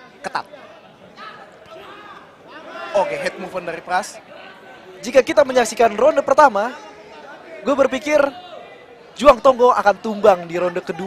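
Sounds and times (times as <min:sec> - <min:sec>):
arena crowd murmur: 0:00.0 - 0:11.0
male commentator speaking: 0:01.8 - 0:04.4, 0:05.0 - 0:08.5, 0:09.2 - 0:11.0.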